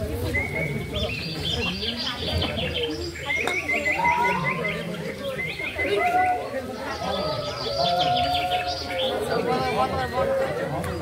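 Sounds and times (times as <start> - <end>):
low voices: 0.0 - 11.0.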